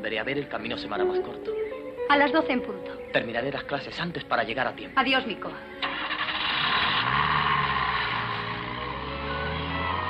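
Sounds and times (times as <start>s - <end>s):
vehicle engine pulling away: 5.7s - 10.0s.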